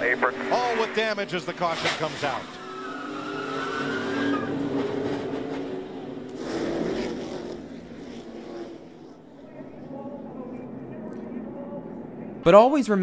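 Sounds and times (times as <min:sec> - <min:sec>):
skidding noise: 0:00.0 - 0:10.8
race car engines at speed: 0:00.0 - 0:12.6
high tire squeal: 0:00.6 - 0:09.2.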